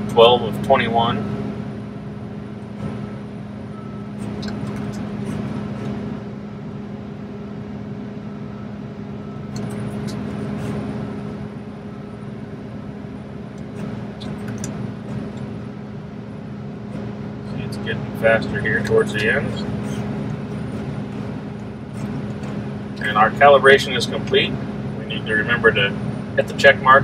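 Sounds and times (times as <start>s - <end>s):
combine engine running: 0.0s - 27.0s.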